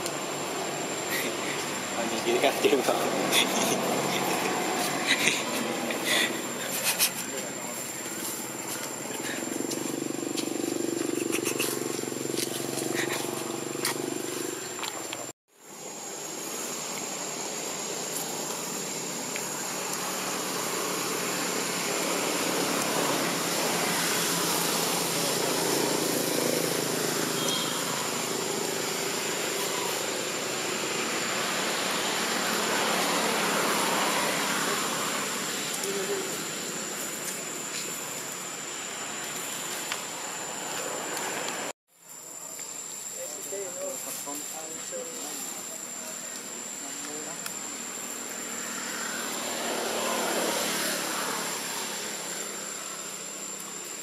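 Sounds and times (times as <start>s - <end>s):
hiss: 0.0s - 10.1s, 15.6s - 54.0s
high-pitched insect drone: 0.0s - 54.0s.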